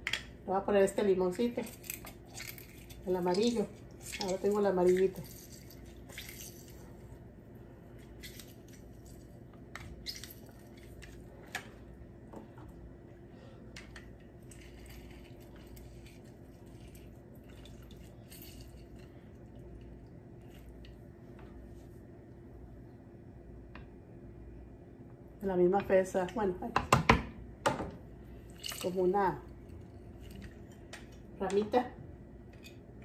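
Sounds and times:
low hum: 0.0 - 26.6
juice dripping: 14.5 - 21.0.

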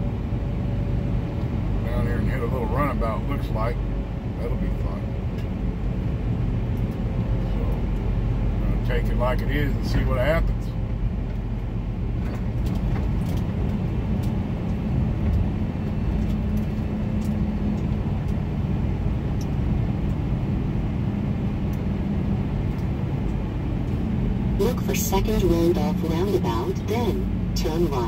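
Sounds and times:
road noise: 0.0 - 28.0
truck diesel engine running: 0.0 - 28.0.

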